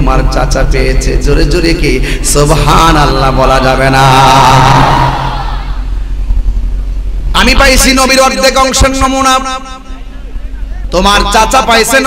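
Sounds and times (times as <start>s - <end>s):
low mains hum: 0.0s - 12.0s
chanting voice: 2.4s - 6.0s.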